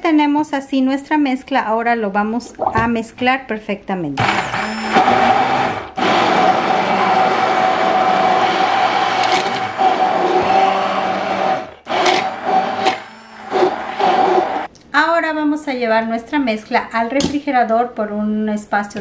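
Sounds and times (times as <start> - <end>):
immersion blender motor whine: 4.2 - 14.7.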